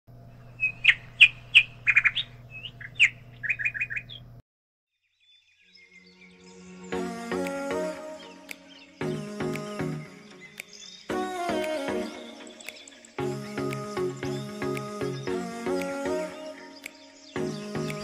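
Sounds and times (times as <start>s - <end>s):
steady low hum: 0.1s - 4.4s
birds chirping: 0.2s - 4.4s, 5.2s - 18.0s
background music with plucked notes: 6.8s - 18.0s.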